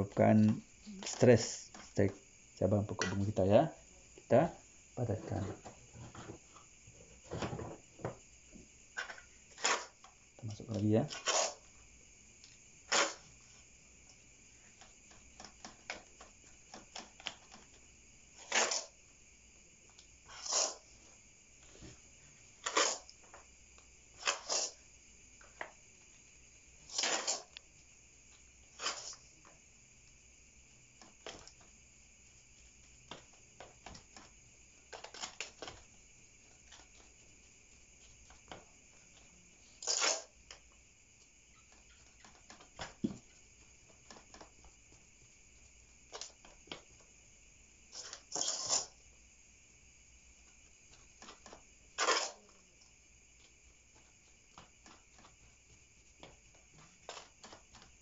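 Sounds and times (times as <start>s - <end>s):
faint high hum: 0.0s - 58.0s.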